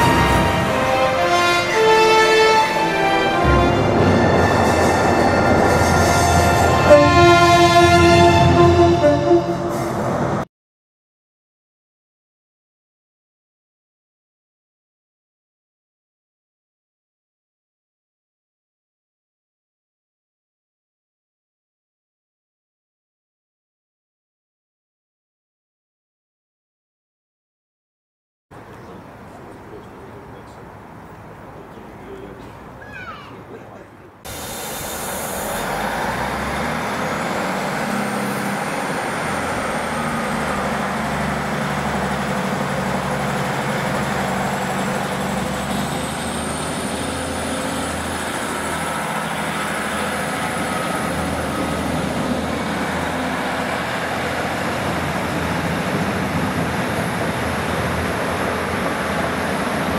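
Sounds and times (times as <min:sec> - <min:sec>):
train horn: 0:00.0 - 0:10.2
train engine rumble: 0:00.0 - 0:10.5, 0:28.5 - 0:59.9
high-pitched squeal: 0:34.3 - 0:55.8.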